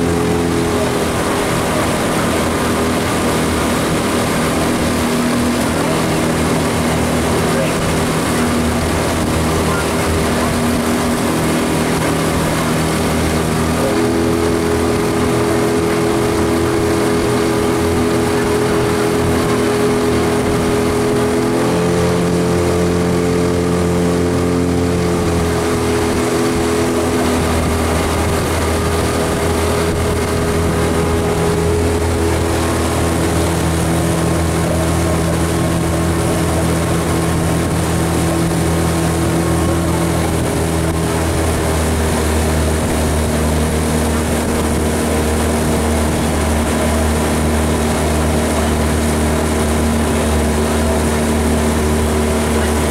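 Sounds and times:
outboard motor running: 0.0s - 52.9s.

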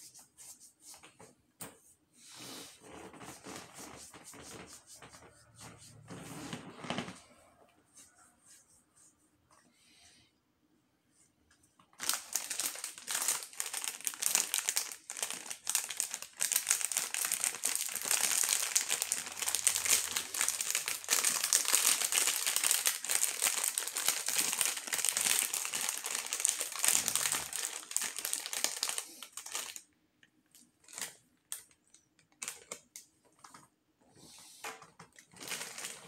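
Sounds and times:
plastic foil bag crinkling: 11.9s - 29.9s, 30.5s - 33.0s, 35.1s - 36.0s.

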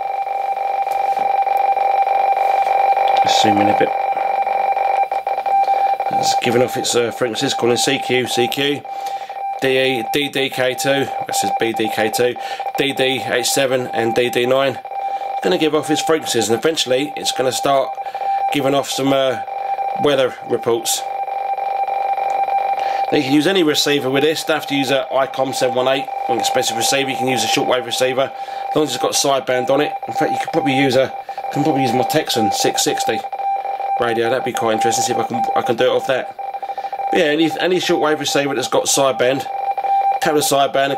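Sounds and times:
fluttering radioteletype tone: 0.0s - 40.9s.

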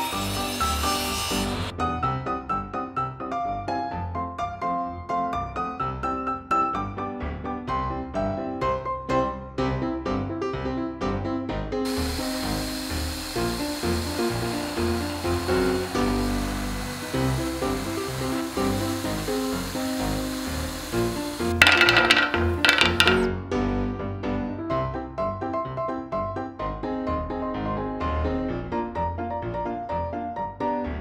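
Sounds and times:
drill press boring wood: 0.0s - 1.7s, 11.9s - 23.3s
piano background music: 0.0s - 21.6s, 22.2s - 31.0s.

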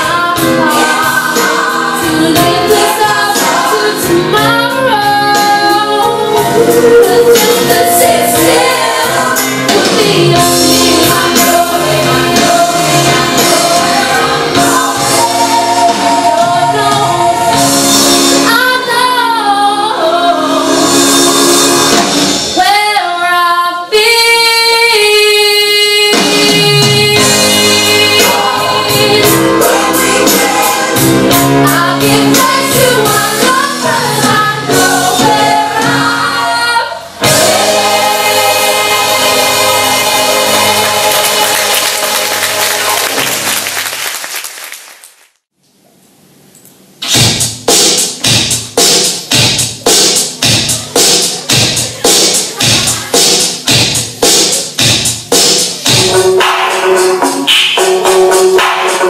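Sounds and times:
sustained instrumental accompaniment: 26.1s - 36.5s, 37.2s - 43.6s
audience applauding: 40.8s - 45.4s.

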